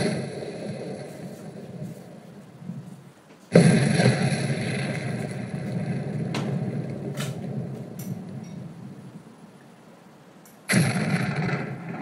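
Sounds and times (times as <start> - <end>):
loud rumbling: 0.0 - 9.5, 10.7 - 12.0.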